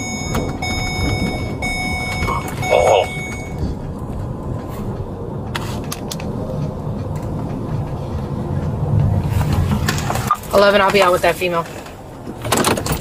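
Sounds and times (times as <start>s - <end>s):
car road and engine rumble: 0.0s - 13.0s.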